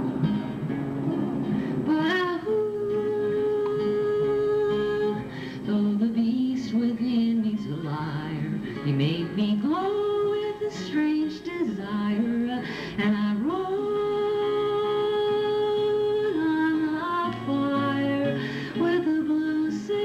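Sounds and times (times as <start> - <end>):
acoustic guitar: 0.0 - 20.0
woman singing folk song: 1.4 - 20.0.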